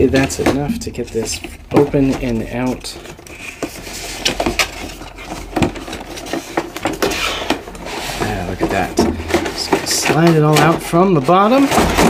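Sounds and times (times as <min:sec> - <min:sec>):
cardboard scraping against cardboard: 0:01.0 - 0:11.8.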